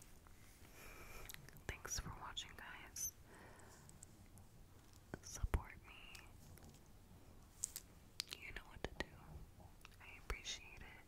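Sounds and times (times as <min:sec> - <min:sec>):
woman whispering: 0:01.6 - 0:03.2, 0:05.1 - 0:06.4, 0:08.3 - 0:11.0.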